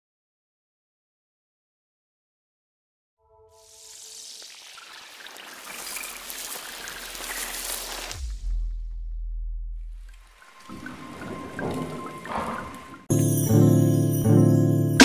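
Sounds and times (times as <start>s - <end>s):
swelling hiss: 3.6s - 8.3s
splashy crackling texture: 3.6s - 8.4s
deep bass hit sliding down: 8.2s - 10.4s.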